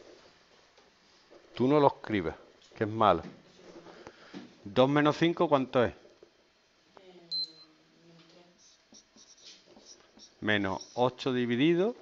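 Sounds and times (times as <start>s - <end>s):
marker strokes on whiteboard: 8.6s - 10.4s
marker squeaking on whiteboard: 8.9s - 11.1s.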